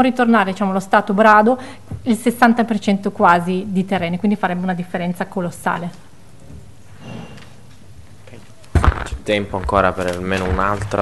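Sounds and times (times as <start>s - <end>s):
steady room hiss: 0.0s - 11.0s.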